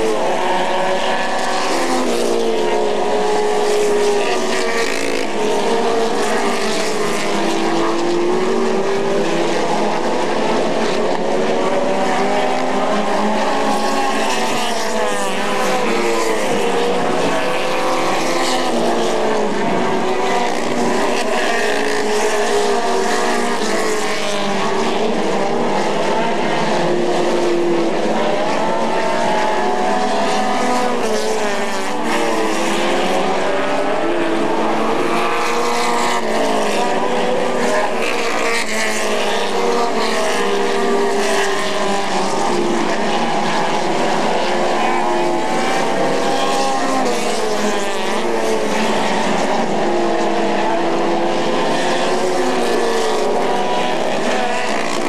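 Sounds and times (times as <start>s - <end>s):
race car engines running hard: 0.0s - 55.0s.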